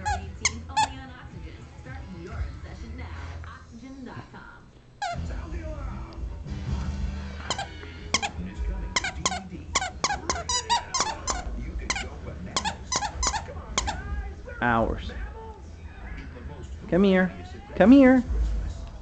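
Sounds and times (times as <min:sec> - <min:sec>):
squeaky toy squeaking: 0:00.0 - 0:01.0, 0:05.0 - 0:05.3, 0:07.5 - 0:14.1.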